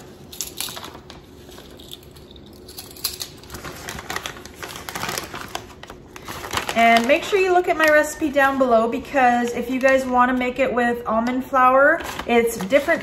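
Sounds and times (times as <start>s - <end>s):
plastic bag crinkling: 0.0s - 8.7s, 12.0s - 13.0s.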